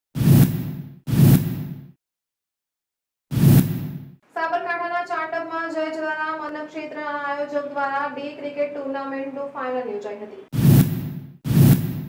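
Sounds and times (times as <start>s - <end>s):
whoosh sound effect: 3.3s - 4.1s, 10.6s - 12.0s.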